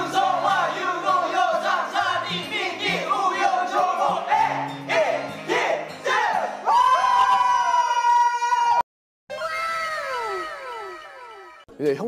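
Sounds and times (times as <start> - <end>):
young men shouting and singing: 0.0 - 7.4.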